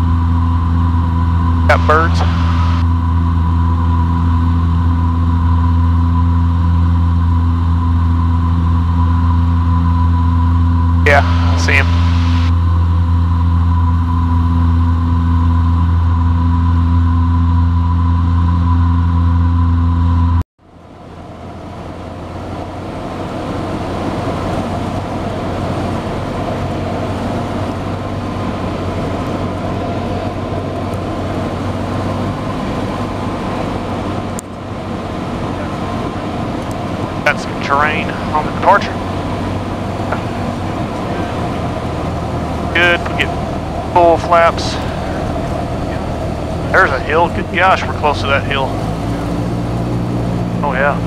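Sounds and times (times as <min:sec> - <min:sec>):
airplane engine and propeller drone: 0:00.0 - 0:51.0.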